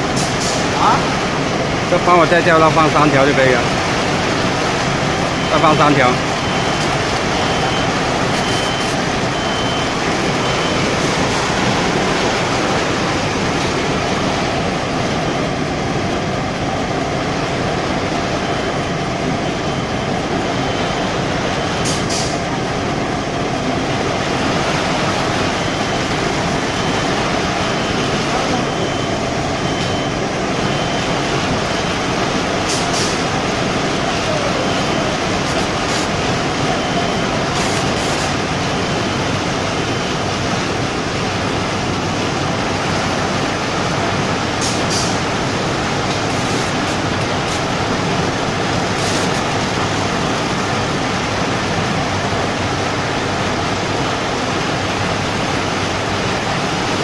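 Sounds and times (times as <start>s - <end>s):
machine running steadily: 0.0s - 57.0s.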